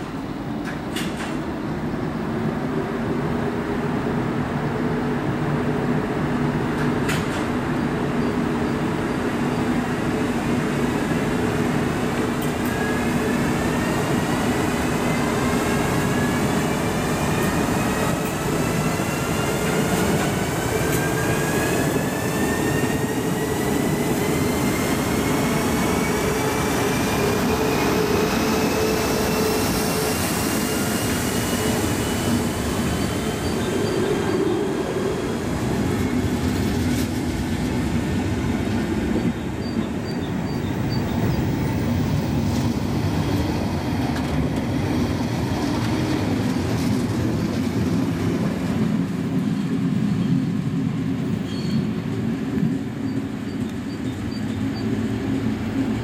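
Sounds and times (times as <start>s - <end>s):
electric locomotive whine: 4.2s - 56.0s
train wheels rumbling: 6.0s - 56.0s.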